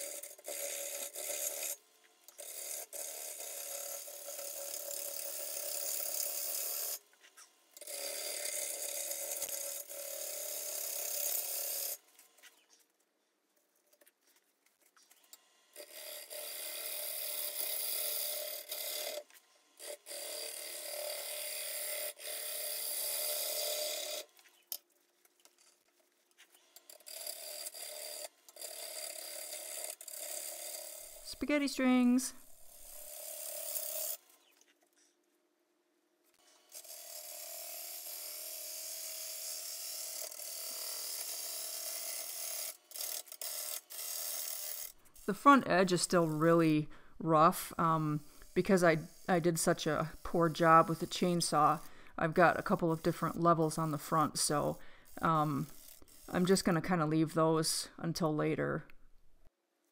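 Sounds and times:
gouge cutting wood on lathe: 0:00.0 - 0:07.1, 0:07.8 - 0:12.6, 0:15.3 - 0:24.4, 0:26.8 - 0:34.5, 0:36.5 - 0:56.8.

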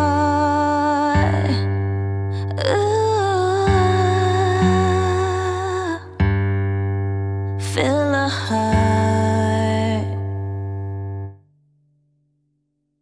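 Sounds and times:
woman singing wordless notes: 0:00.0 - 0:01.8, 0:02.4 - 0:06.2, 0:07.6 - 0:10.4.

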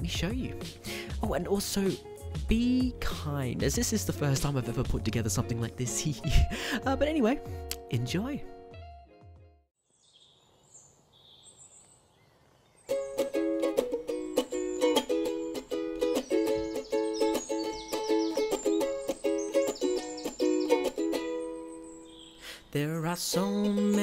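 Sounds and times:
ukulele strumming chords: 0:00.0 - 0:08.7, 0:12.9 - 0:21.9, 0:22.8 - 0:24.0.

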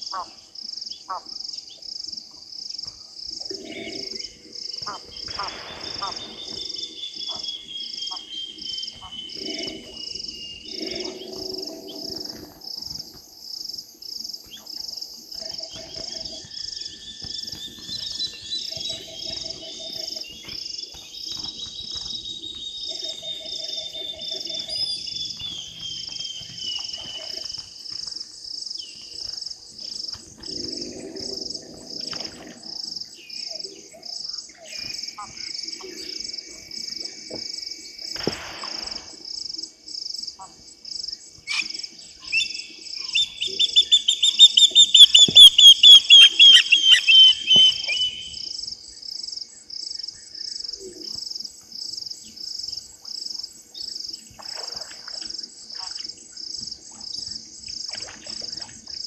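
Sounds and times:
high pulsing insect chirping: 0:00.0 - 0:59.0.

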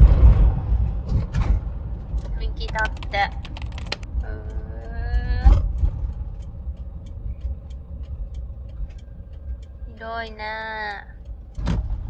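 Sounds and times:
vehicle engine and tyre rumble: 0:00.0 - 0:12.0.

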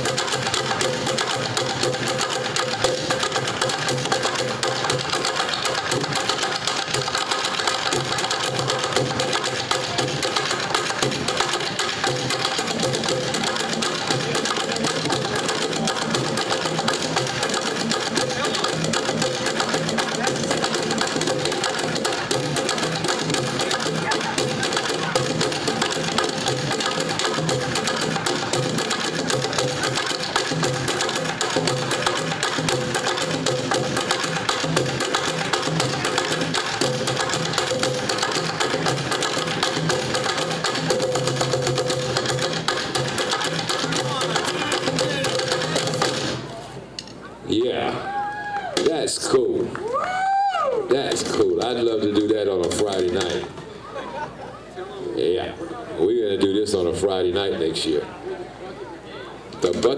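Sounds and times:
sticks beating plastic buckets: 0:00.0 - 0:46.5, 0:48.7 - 0:49.1, 0:50.9 - 0:53.4.

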